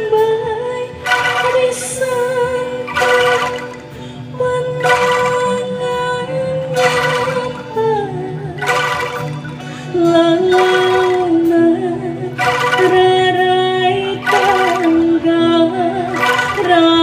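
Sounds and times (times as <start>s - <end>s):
woman singing: 0.0s - 17.0s
bamboo instrument ensemble: 0.8s - 17.0s
band accompaniment: 1.0s - 4.0s, 4.8s - 5.9s, 6.8s - 9.8s, 10.4s - 11.7s, 12.3s - 15.3s, 16.0s - 17.0s.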